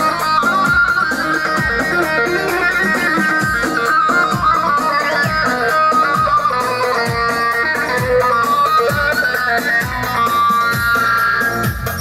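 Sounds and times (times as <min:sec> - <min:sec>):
plucked-string melody: 0:00.0 - 0:12.0
steady low drum beat: 0:00.0 - 0:12.0.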